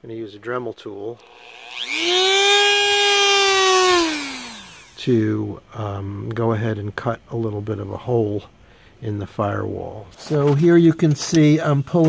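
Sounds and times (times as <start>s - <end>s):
rotary tool high whine: 1.2s - 5.1s.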